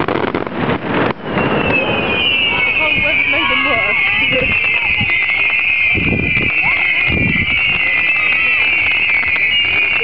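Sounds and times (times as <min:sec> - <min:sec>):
crowd voices: 0:00.0 - 0:10.0
firework bang: 0:00.0 - 0:10.0
whistling firework: 0:00.0 - 0:10.0.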